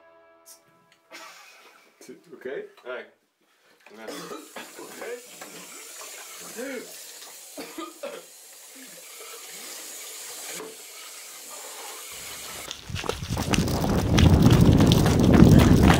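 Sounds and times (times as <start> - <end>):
faint hiss: 3.5 - 12.7
loud rough rumbling with crackles: 12.7 - 15.9.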